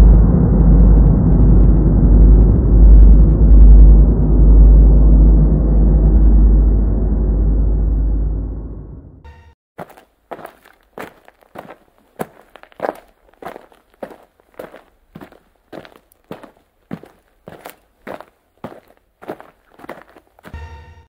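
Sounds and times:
footsteps walking: 9.8s - 20.6s.

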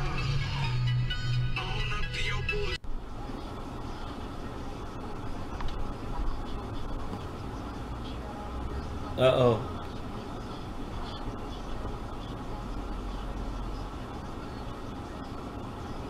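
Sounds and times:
music: 0.0s - 2.8s
car road and engine noise: 0.0s - 16.0s.

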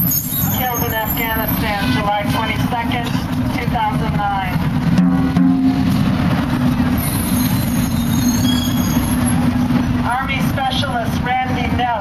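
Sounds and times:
traffic engine rumble: 0.0s - 12.0s.

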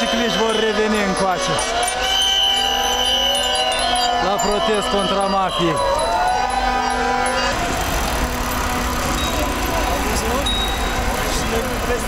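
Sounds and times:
city street noise: 0.0s - 12.0s
drawn-out rising tone: 0.0s - 12.0s
voices: 0.0s - 12.0s.

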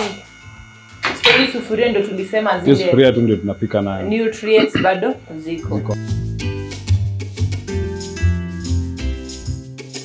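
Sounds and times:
person speaking: 4.4s - 4.9s.

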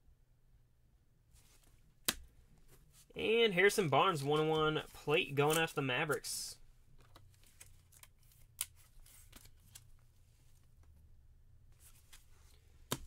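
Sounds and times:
low room hum: 0.0s - 13.0s
cards in plastic sleeves rustling: 2.7s - 10.8s.

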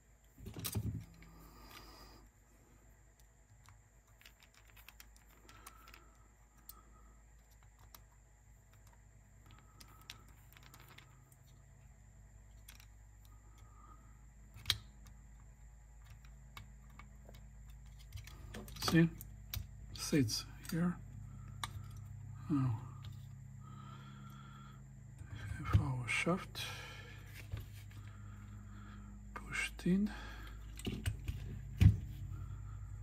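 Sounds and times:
faint low hum: 0.0s - 33.0s
small clicks and taps of parts: 3.1s - 11.7s, 12.4s - 19.7s, 21.4s - 22.2s, 30.4s - 32.0s.

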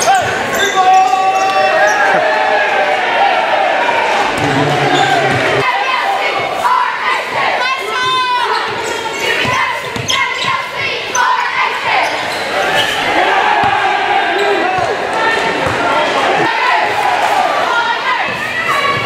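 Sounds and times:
crowd chatter echoing: 0.0s - 19.0s.

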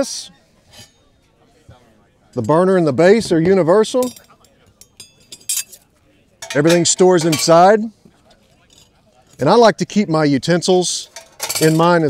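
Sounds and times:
steel panels clinking: 6.4s - 7.7s, 11.0s - 12.0s.

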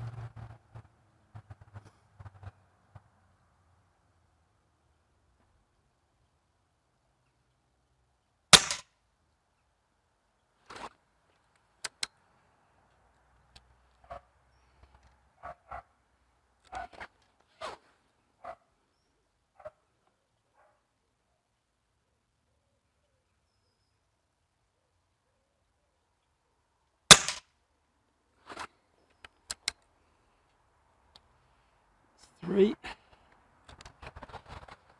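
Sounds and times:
air rifle shots: 8.5s - 8.8s, 27.1s - 27.4s
rifle cocking clicks and knocks: 29.2s - 29.8s.

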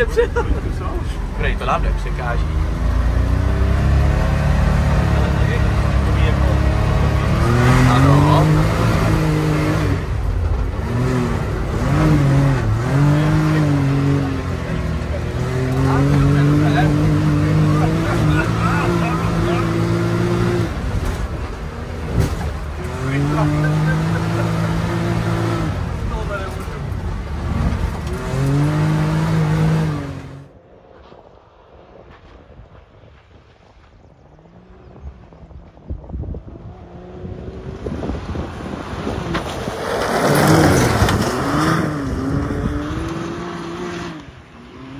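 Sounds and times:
engine revving: 0.0s - 30.6s, 36.4s - 44.9s
distant engine: 0.0s - 44.9s
wind noise: 30.6s - 44.2s.

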